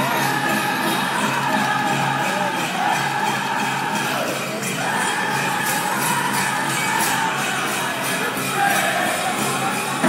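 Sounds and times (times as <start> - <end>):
bells jingling: 0.0 - 10.0
men singing: 5.6 - 10.0.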